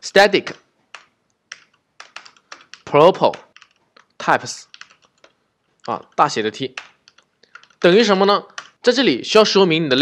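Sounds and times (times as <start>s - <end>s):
typing on computer keyboard: 0.5s - 8.8s.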